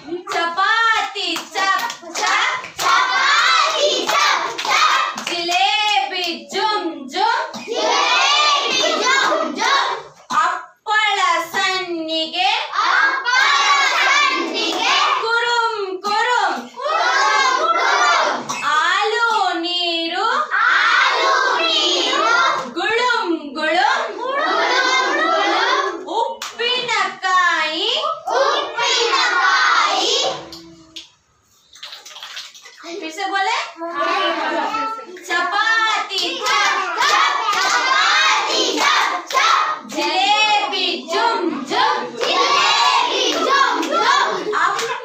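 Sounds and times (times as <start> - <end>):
young children singing: 7.6 - 10.1, 24.2 - 26.1, 28.3 - 31.0, 33.9 - 45.0.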